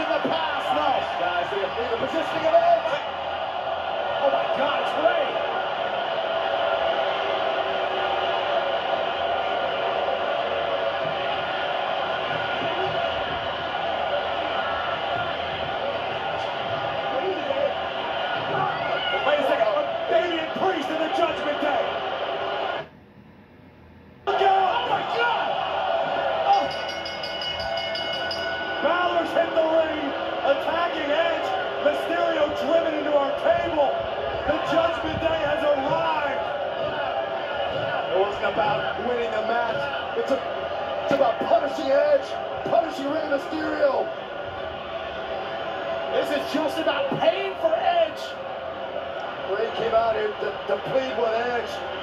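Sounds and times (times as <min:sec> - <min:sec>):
arena crowd noise: 0:00.0 - 0:23.0, 0:24.2 - 0:52.0.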